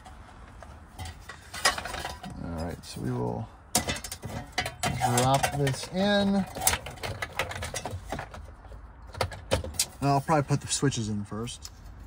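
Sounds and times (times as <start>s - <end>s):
metal plate handling noise: 0.0s - 2.7s, 3.7s - 10.0s
sharp clicks and knocks: 3.7s - 10.0s.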